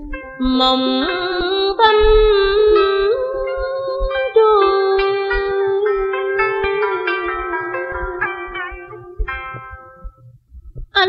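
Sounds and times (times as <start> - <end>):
woman singing a long held note: 0.4 - 9.2.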